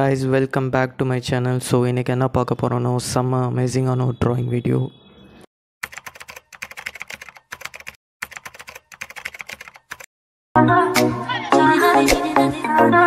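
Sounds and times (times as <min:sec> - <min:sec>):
computer keyboard typing: 0:05.8 - 0:10.1
music: 0:10.6 - 0:13.0.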